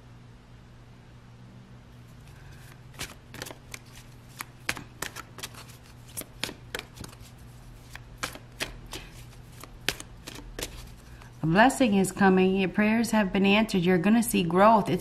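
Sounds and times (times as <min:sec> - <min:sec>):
faint steady hum: 0:00.0 - 0:15.0
cards being shuffled: 0:02.1 - 0:11.4.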